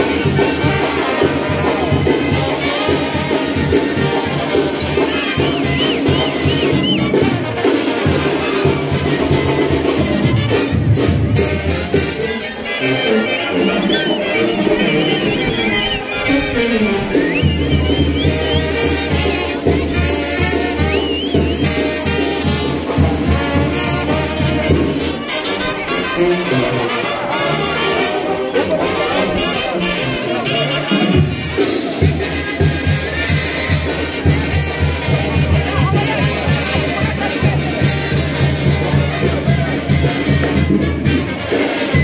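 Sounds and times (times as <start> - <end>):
trumpets and trombones: 0.0 - 42.0.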